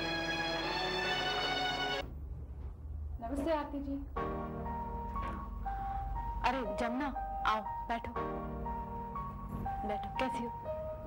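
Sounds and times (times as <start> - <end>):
woman speaking: 3.2 - 4.1, 6.4 - 8.2, 9.8 - 10.6.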